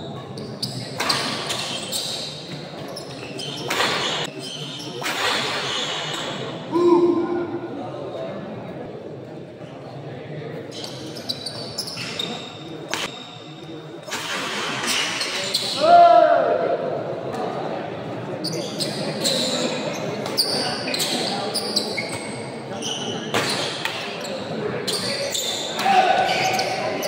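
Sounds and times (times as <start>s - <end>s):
spectators' voices: 0.0s - 27.0s.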